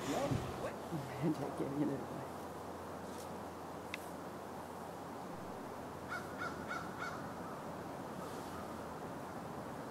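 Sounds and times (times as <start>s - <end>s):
woodpecker calling: 6.1s - 7.6s.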